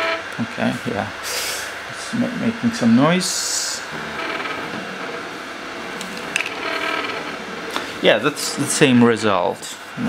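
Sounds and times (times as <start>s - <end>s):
stepper motors whining: 0.0s - 0.4s, 2.2s - 9.2s.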